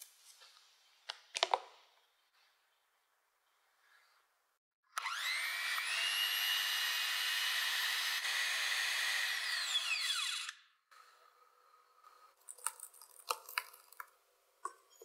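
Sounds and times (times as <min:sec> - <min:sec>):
electric whisk motor: 0:04.9 - 0:10.7.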